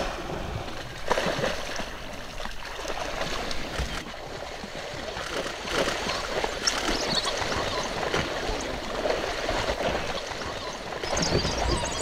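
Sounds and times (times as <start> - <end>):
small splashes: 0.0 - 12.0
water sloshing and gurgling: 0.0 - 12.0.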